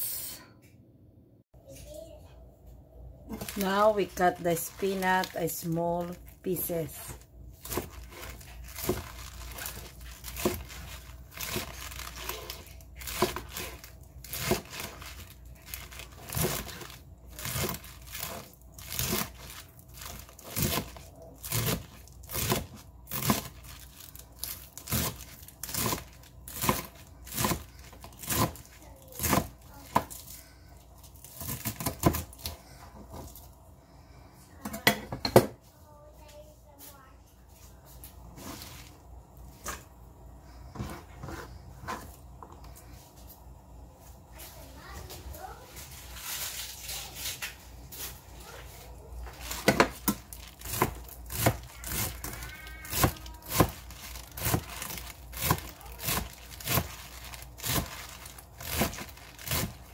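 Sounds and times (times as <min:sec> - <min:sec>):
knife chopping spinach on board: 0:07.6 - 0:15.3, 0:16.1 - 0:30.2, 0:31.4 - 0:32.6, 0:49.6 - 0:59.9.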